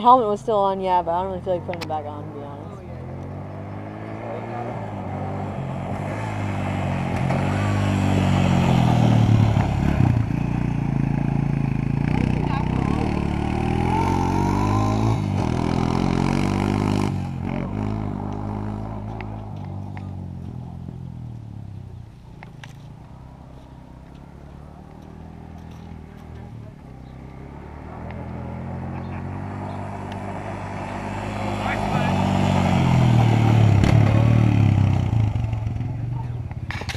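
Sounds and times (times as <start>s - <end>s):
quad bike engine revving: 0.0s - 21.3s, 22.5s - 36.9s.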